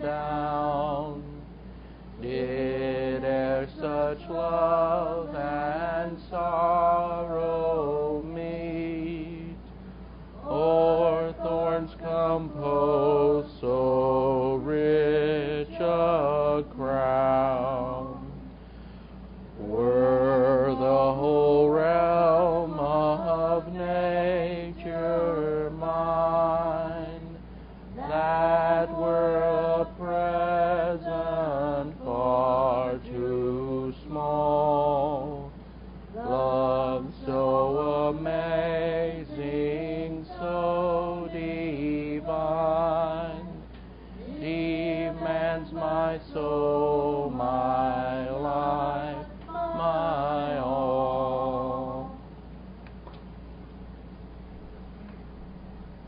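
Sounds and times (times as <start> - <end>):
man singing a slow hymn: 0.0 - 9.7, 10.4 - 18.6, 19.6 - 35.6, 36.2 - 52.2.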